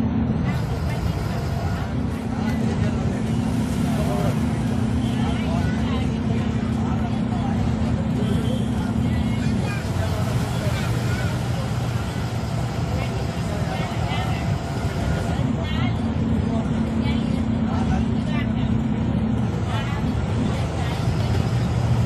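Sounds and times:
bus diesel engine drone: 0.0 - 22.0
road noise in cabin: 0.0 - 22.0.

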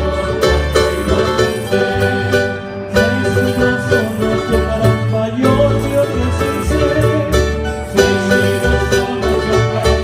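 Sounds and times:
plucked string ensemble polka: 0.0 - 10.0.

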